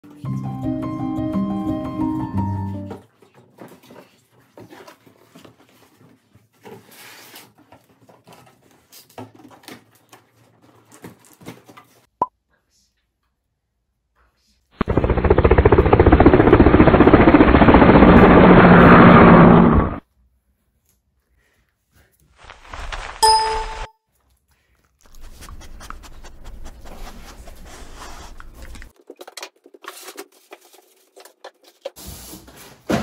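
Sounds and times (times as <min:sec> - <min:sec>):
loud mechanical rattle: 0:14.8 - 0:20.0.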